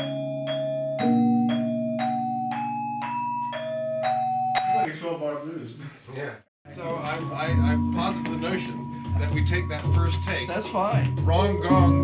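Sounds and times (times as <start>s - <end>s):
gamelan ensemble playing: 0.0s - 4.8s, 6.8s - 12.0s.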